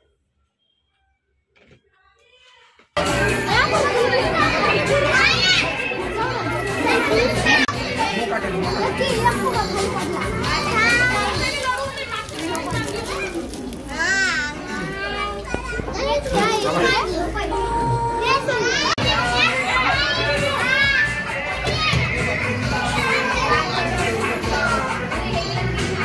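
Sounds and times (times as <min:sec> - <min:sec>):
children shouting and chattering: 0:01.8 - 0:26.0.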